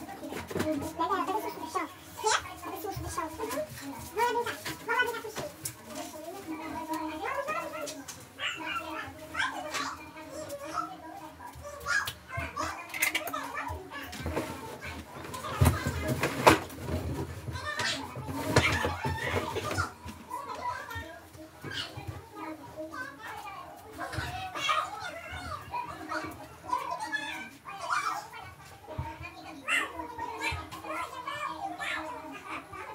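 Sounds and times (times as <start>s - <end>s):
young children talking and playing: 0.0s - 32.9s.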